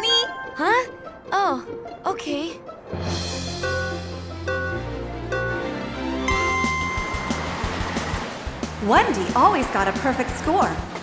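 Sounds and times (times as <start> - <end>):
cartoon background music: 0.0 - 10.9
countdown beeps: 3.6 - 7.5
rushing noise: 6.3 - 11.0.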